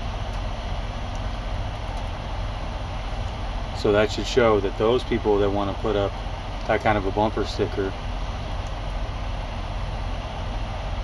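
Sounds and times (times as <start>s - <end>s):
engine rumble inside vehicle: 0.0s - 11.0s.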